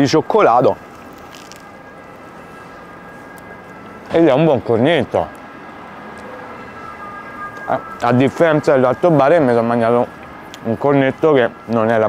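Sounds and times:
city street noise: 0.0s - 12.0s
distant traffic: 0.0s - 12.0s.

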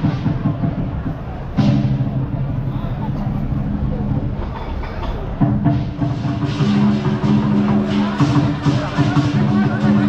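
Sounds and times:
dense street noise: 0.0s - 10.0s
music with held low notes: 5.2s - 10.0s.

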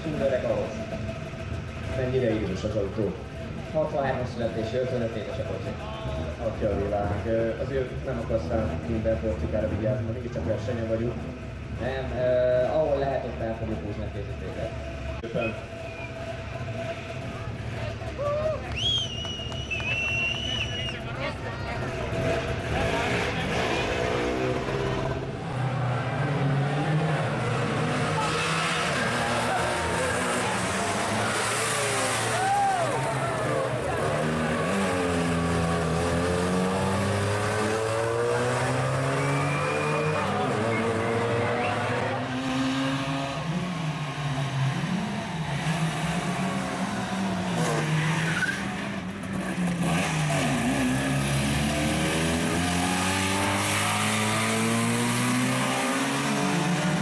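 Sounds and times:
two-stroke engine revving hard: 21.8s - 57.0s.

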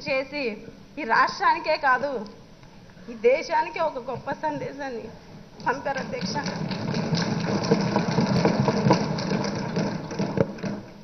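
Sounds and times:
people thumping wooden desks: 5.6s - 11.0s.

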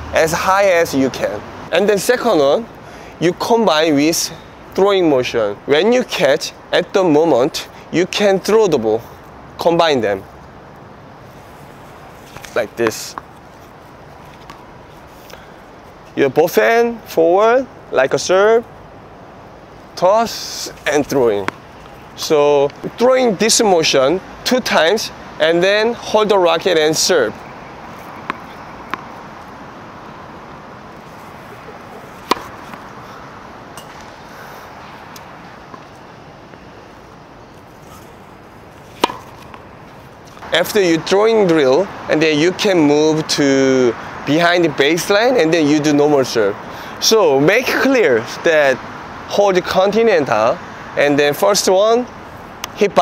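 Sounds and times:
outdoor background hiss: 0.0s - 53.0s
tennis ball bouncing on hard court: 27.9s - 29.3s, 31.0s - 33.0s, 33.8s - 34.2s, 38.8s - 40.4s.

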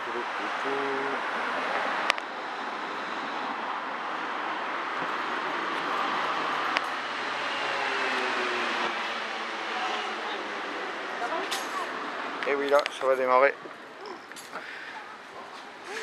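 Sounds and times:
street traffic hiss: 0.0s - 16.0s.

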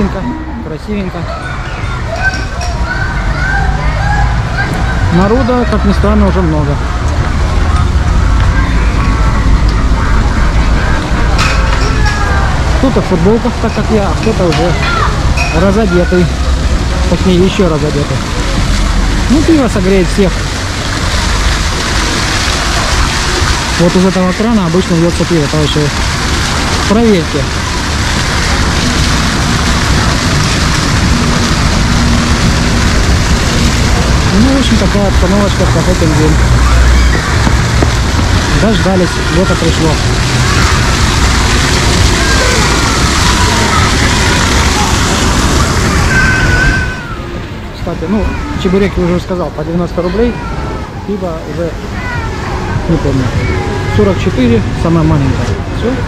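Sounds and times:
faint voices: 0.0s - 56.0s
fountain water rushing and splashing: 0.0s - 56.0s
wind noise on microphone: 27.5s - 34.9s, 35.8s - 39.3s.

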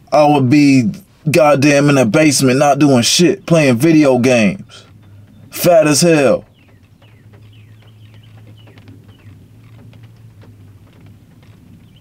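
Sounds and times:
small birds chirping: 1.6s - 12.0s.

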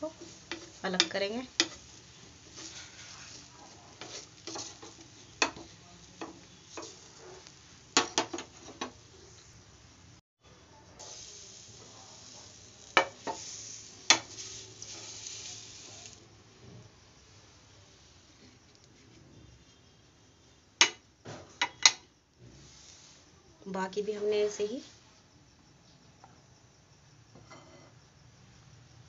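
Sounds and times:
batter sizzling: 0.0s - 20.0s, 22.4s - 24.8s
spatula scraping a pan: 0.1s - 9.4s, 11.0s - 16.2s, 27.4s - 27.9s.

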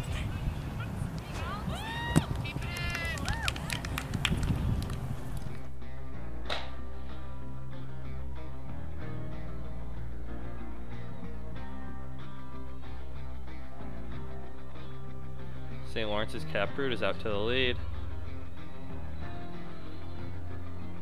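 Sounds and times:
voices shouting and cheering: 0.0s - 5.4s
wind rumble on microphone: 0.0s - 5.6s
background music with guitar: 5.2s - 21.0s.

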